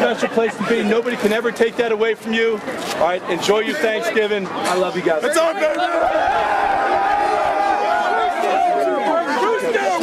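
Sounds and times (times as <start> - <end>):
players shouting and cheering: 0.0 - 10.0.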